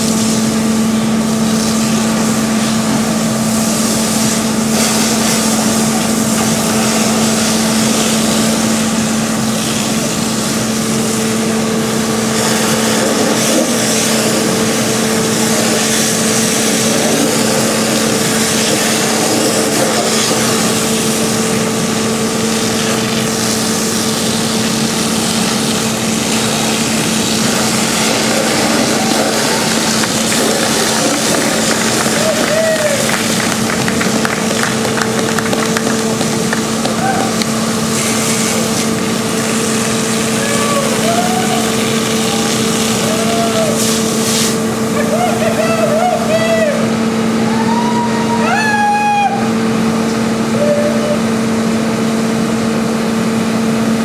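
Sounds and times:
pump engine running: 0.0s - 54.0s
water hissing from hose jets: 0.0s - 54.0s
people shouting: 28.6s - 31.3s, 32.0s - 33.1s, 36.9s - 37.4s, 40.4s - 42.4s, 43.0s - 43.8s.

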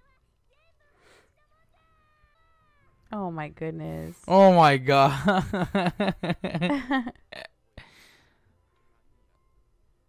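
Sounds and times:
person laughing: 4.9s - 7.5s.

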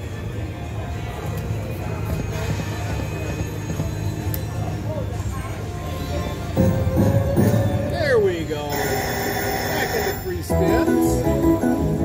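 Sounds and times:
slot machine falling tone: 8.7s - 12.0s.

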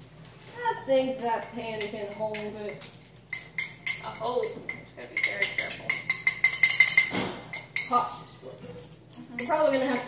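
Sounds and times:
metal spoon stirring in frying pan: 1.6s - 8.1s.

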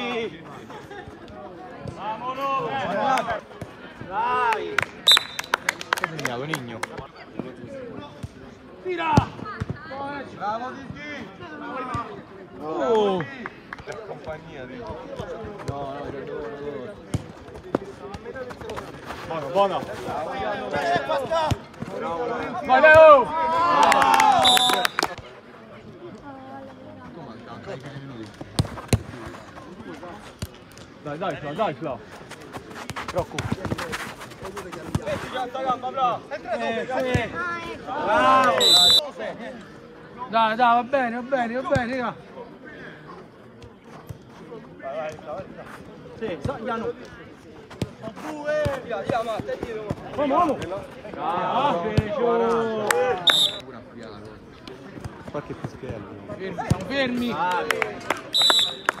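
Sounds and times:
players calling out: 17.9s - 25.2s, 50.3s - 53.7s, 56.5s - 59.0s
players shouting: 51.2s - 53.6s.

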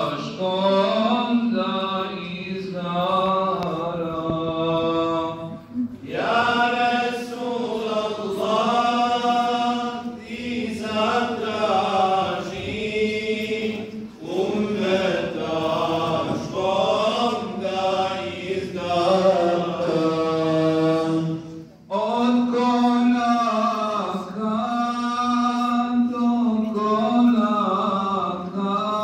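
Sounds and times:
man chanting: 0.0s - 13.8s, 16.8s - 29.0s.

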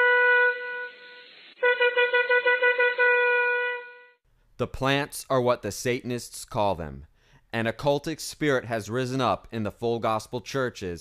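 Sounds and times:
ram's horn blasts: 0.0s - 4.2s.

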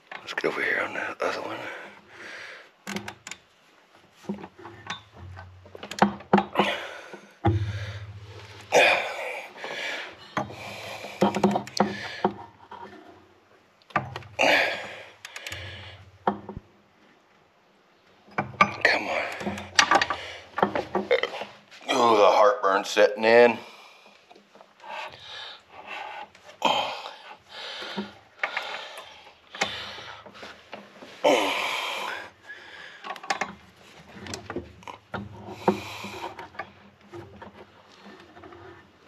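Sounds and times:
metal tools clicking and knocking: 4.7s - 6.7s, 18.3s - 21.1s, 33.0s - 33.6s
man muttering and grunting: 8.7s - 9.6s, 18.8s - 19.6s, 21.0s - 23.6s, 31.2s - 32.3s.

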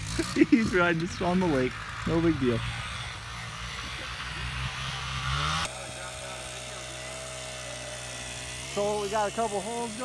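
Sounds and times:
distant engine revving: 0.0s - 10.0s
small engine idling: 0.0s - 10.0s.

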